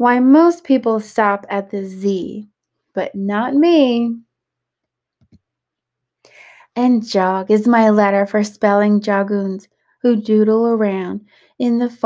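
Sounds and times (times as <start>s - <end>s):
woman speaking: 0.0s - 4.2s, 6.7s - 12.0s.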